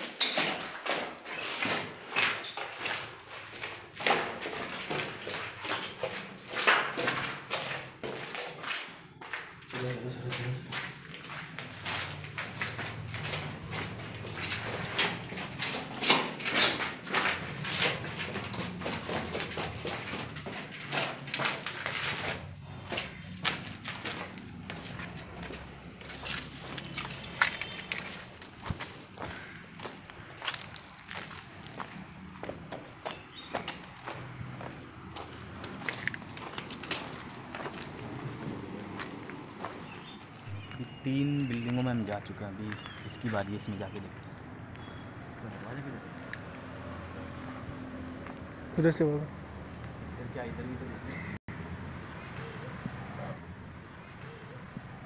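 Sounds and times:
clicking and rustling from handling: 0:10.7 - 0:31.9.

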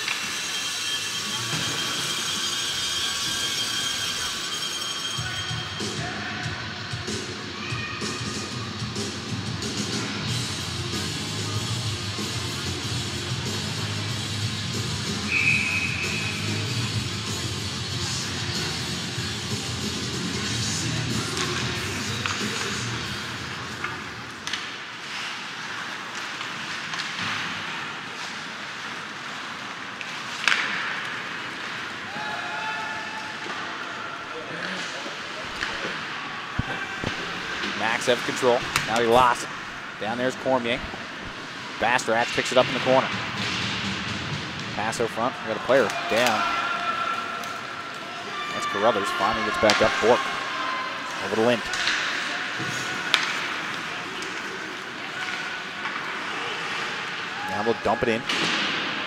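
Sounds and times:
hockey sticks and puck clacking: 0:00.0 - 0:06.0, 0:15.2 - 0:33.9, 0:34.5 - 0:50.4, 0:51.1 - 0:59.0
players shouting: 0:32.0 - 0:43.2, 0:44.7 - 0:58.8.

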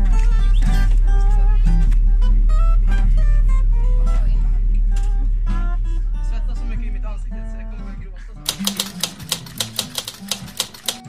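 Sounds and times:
typewriter key clicks: 0:08.5 - 0:11.0.

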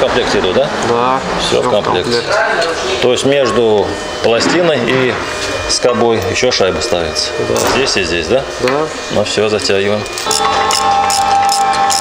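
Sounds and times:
power wrench whine and ticking: 0:09.2 - 0:12.0.

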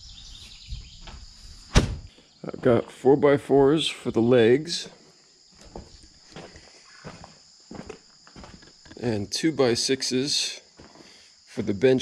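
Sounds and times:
footsteps on dirt floor: 0:04.0 - 0:09.1, 0:10.7 - 0:11.3.

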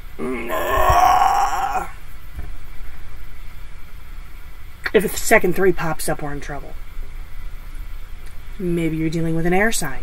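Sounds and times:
woman groaning no: 0:00.2 - 0:02.0.

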